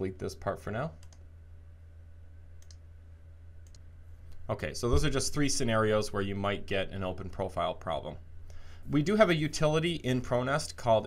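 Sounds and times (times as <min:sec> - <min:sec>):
steady low hum: 0:00.0 - 0:11.0
computer mouse clicks: 0:01.0 - 0:01.2, 0:02.6 - 0:02.8, 0:03.6 - 0:04.4.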